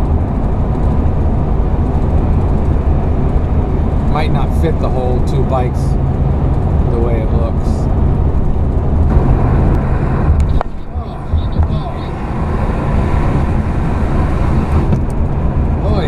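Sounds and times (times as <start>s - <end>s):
road and engine noise inside vehicle: 0.0s - 16.0s.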